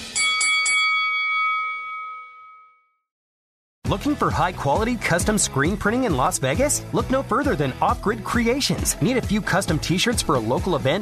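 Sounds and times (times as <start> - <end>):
bell-like tone: 0.0 - 3.1.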